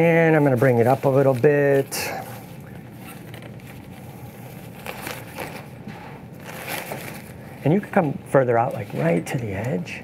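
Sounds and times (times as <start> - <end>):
rustling and scraping of equipment: 0.0 - 9.7.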